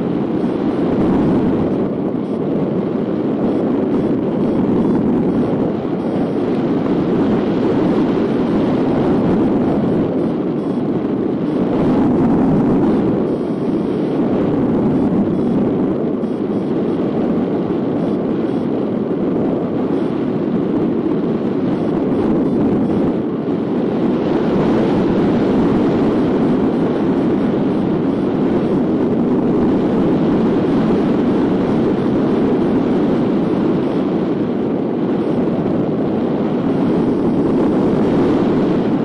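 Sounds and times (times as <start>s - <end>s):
wind rushing over microphone: 0.0s - 39.0s.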